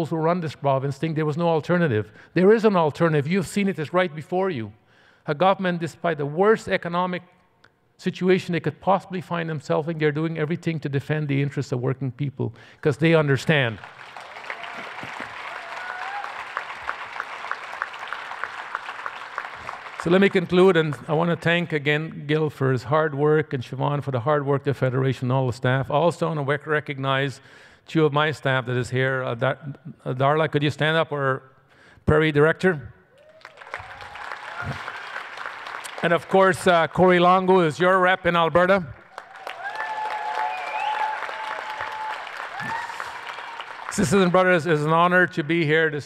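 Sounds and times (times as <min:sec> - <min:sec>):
audience applauding: 0:13.7 - 0:20.7, 0:33.2 - 0:36.9, 0:39.0 - 0:44.8.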